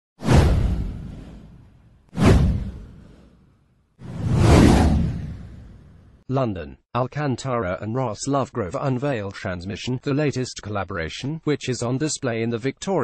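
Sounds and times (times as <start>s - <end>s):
whoosh sound effects: 0.2s - 3.4s, 4.0s - 6.2s.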